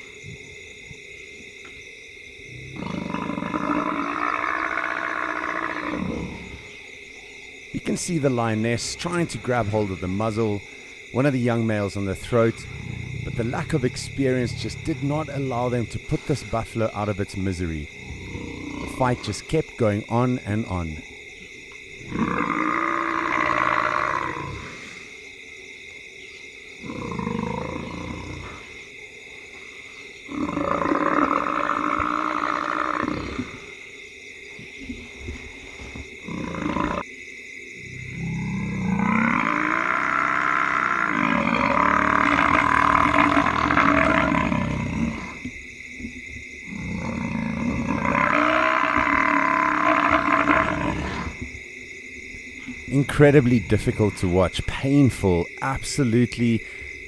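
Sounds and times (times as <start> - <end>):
buffalo bellowing in distress: 38.1 - 45.4, 46.8 - 51.4.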